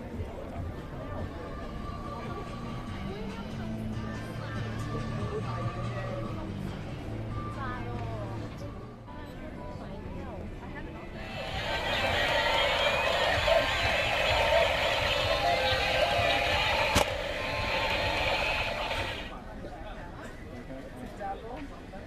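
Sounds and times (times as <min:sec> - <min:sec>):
toy police cars electronic noise: 0:11.2 - 0:19.3
sharp click: 0:16.8 - 0:17.2.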